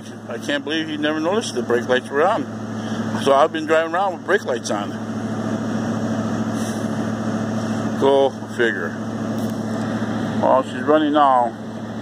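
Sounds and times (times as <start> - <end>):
truck engine idling: 0.0 - 12.0.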